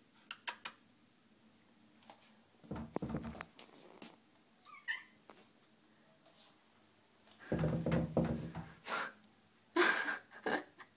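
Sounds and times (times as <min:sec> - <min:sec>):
thump and rustle of movement: 0:02.0 - 0:04.2, 0:07.4 - 0:08.8
cat meowing: 0:04.6 - 0:05.2.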